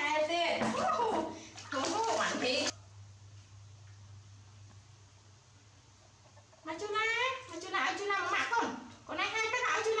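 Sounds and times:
woman talking: 0.0s - 2.7s, 6.6s - 10.0s
water splashing in a metal basin: 0.6s - 2.7s.

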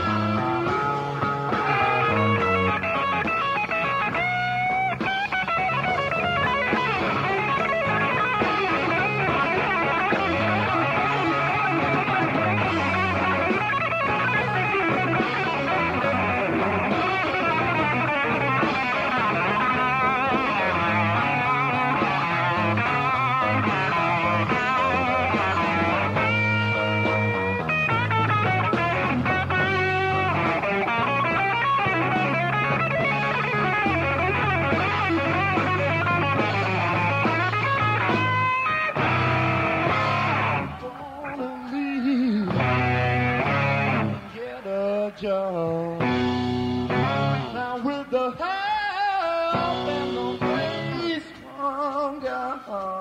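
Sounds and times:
low bass notes: 0.0s - 40.8s, 42.4s - 44.3s, 46.0s - 47.6s, 49.5s - 51.1s
electric guitar lead: 0.0s - 53.0s.

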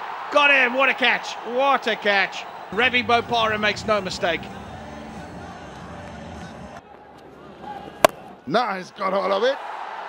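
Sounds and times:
stadium crowd murmur: 2.3s - 8.5s.

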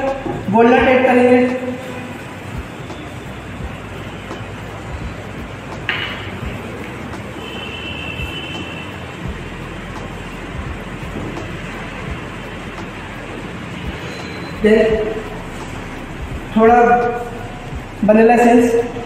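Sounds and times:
background rumble and hiss: 14.6s - 19.0s.

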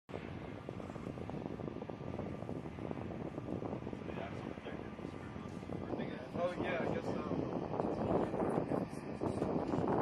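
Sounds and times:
aircraft or equipment rumble: 0.1s - 10.0s
wind on microphone: 0.1s - 10.0s.

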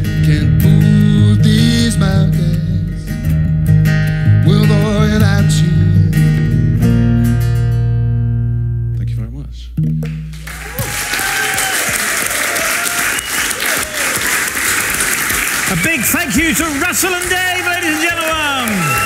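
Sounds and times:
acoustic guitar and bass chord: 0.0s - 10.5s
audience applause: 10.4s - 19.0s
voices cheering: 10.5s - 19.0s.

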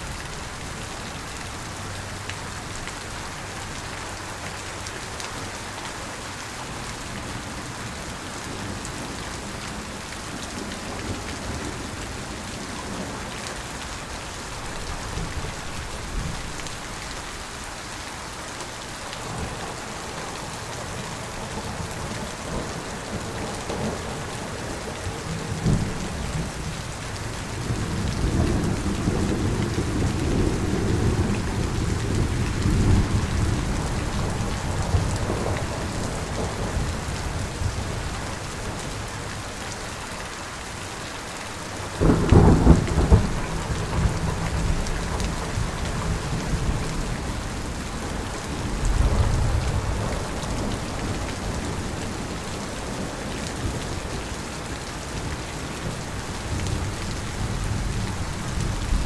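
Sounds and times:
heavy rain: 0.0s - 59.0s
thunder rumbling: 42.0s - 53.8s.

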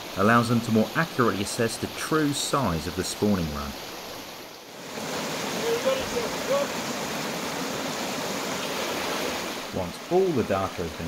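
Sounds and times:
stream water rushing over weir: 0.0s - 11.0s
white water splashing: 0.0s - 11.0s.

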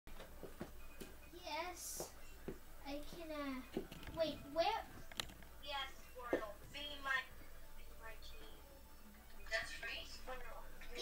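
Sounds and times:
child's voice: 2.8s - 4.9s.

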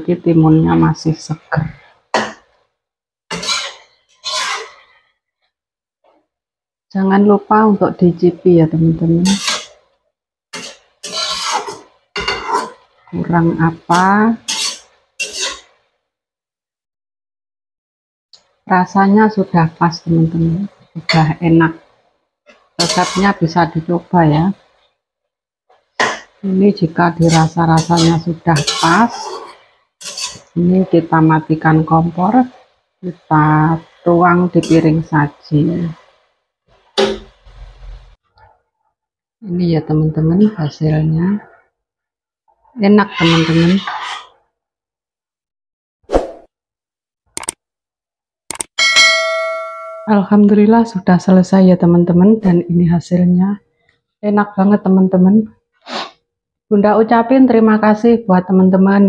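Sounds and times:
scraping and handling noise: 3.3s - 5.0s, 10.6s - 13.1s, 14.0s - 15.7s, 27.2s - 30.5s
spatula scraping a wok: 3.3s - 5.2s, 9.2s - 13.1s, 13.8s - 15.9s, 20.6s - 25.0s, 25.7s - 38.2s, 43.0s - 44.4s, 55.8s - 56.2s.

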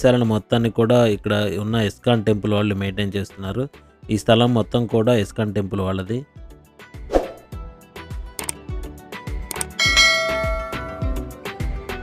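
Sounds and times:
background music with drum beat: 7.0s - 12.0s
bright bell chime: 9.8s - 11.4s.

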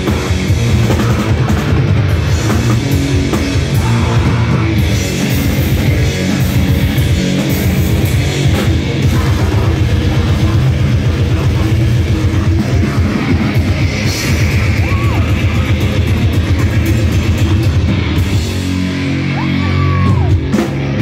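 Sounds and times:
bass: 0.0s - 21.0s
distorted electric guitar: 0.0s - 21.0s
rapid blast-beat drumming: 0.0s - 21.0s.

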